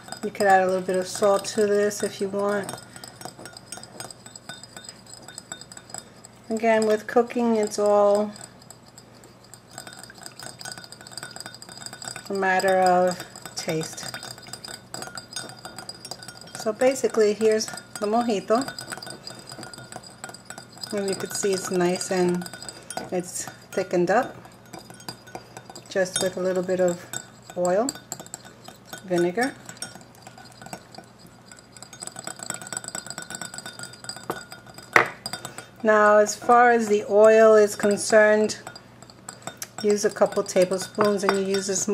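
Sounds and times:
glass bowls clinking: 0.0 - 41.9
metal whisk tapping glass cup: 0.0 - 41.9.

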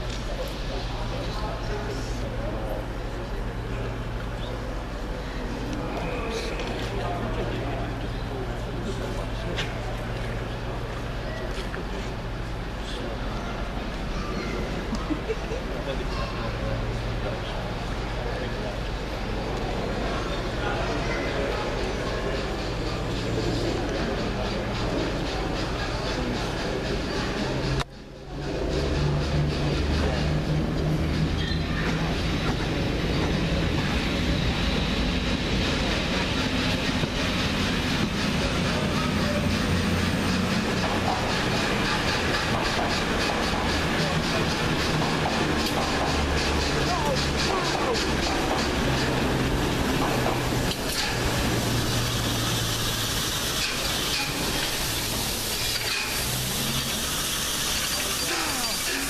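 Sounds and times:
people talking: 0.0 - 59.0
steam locomotive running slowly: 0.0 - 59.0.

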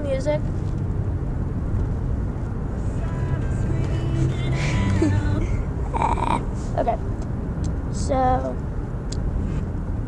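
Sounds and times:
car rumble from inside cabin: 0.0 - 10.0
person laughing: 4.6 - 5.4.

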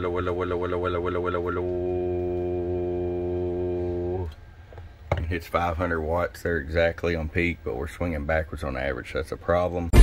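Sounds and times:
low hum: 0.0 - 7.8.

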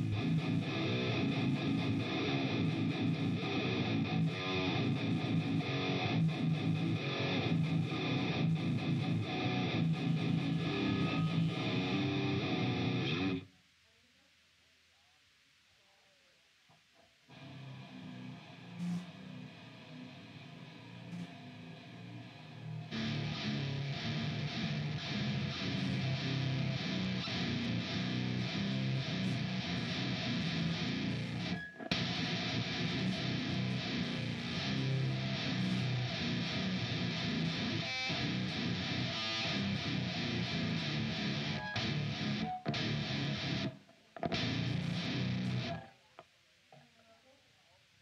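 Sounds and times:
distorted electric guitars: 0.0 - 13.5, 17.3 - 46.0.

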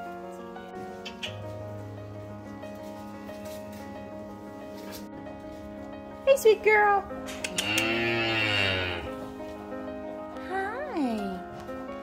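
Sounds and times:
soft background music: 0.0 - 12.0
calf mooing: 7.5 - 9.3.

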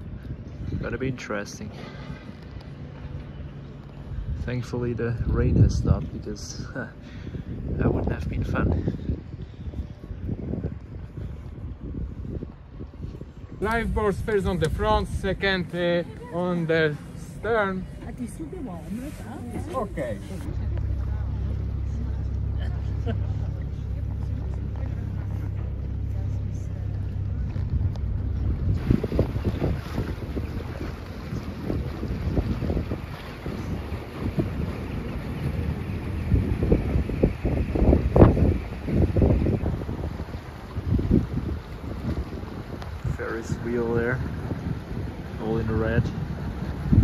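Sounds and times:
boat engine humming: 0.0 - 47.0
water noise: 0.0 - 47.0
wind buffeting microphone: 2.2 - 47.0.

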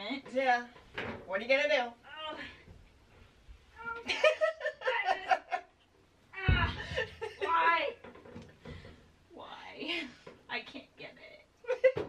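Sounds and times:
woman laughing: 4.0 - 5.7, 6.6 - 7.9, 11.6 - 12.0.

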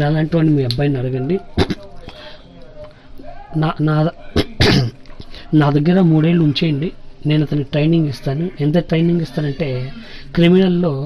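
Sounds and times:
person clearing throat: 4.4 - 5.0.

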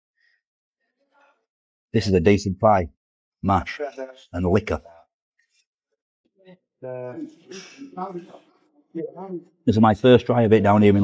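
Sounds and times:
man speaking: 2.0 - 5.1, 6.8 - 11.0.

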